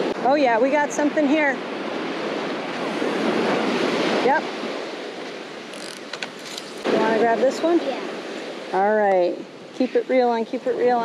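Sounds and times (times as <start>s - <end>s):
surf washing on beach: 0.0s - 11.0s
fishing rod clicks and knocks: 5.7s - 6.9s.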